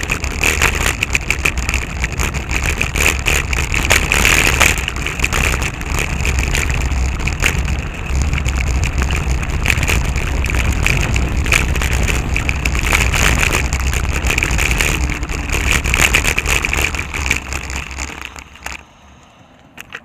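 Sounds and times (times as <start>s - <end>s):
sharp rattling clicks: 0.0s - 18.9s
road rumble: 0.0s - 20.0s
wind buffeting microphone: 0.0s - 20.0s.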